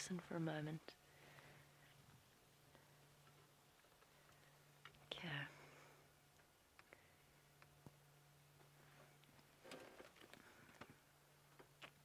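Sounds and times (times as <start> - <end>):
faint low hum: 0.0 - 12.0.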